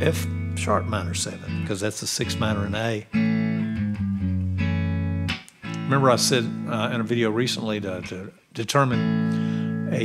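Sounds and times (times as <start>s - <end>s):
electric guitar chord: 0.0s - 1.7s, 9.0s - 10.0s.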